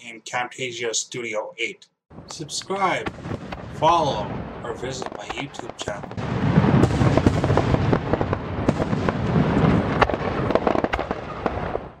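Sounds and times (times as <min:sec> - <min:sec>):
fireworks crackling and banging: 0:02.2 - 0:12.0.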